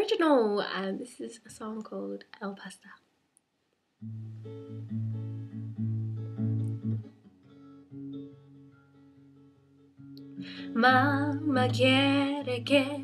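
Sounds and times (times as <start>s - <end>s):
acoustic guitar playing: 4.0s - 13.0s.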